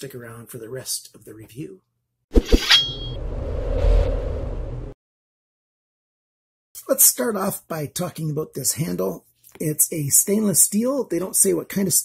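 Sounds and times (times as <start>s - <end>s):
steady low rumble: 3.1s - 5.0s.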